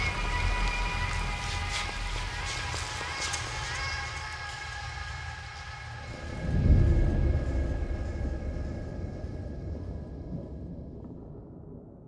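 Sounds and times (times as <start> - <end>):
deep rumble: 5.1 - 12.0.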